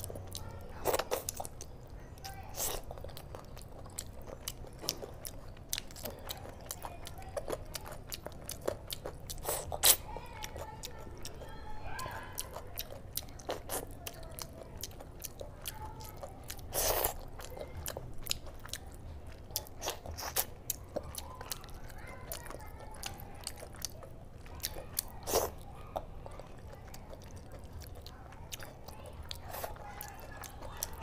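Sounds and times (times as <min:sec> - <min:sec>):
wet chewing and lip-smacking: 0:00.0 - 0:31.0.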